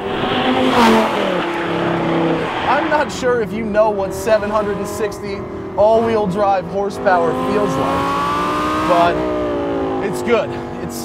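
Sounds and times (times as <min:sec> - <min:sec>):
car engine at high revs: 0:00.0 - 0:11.0.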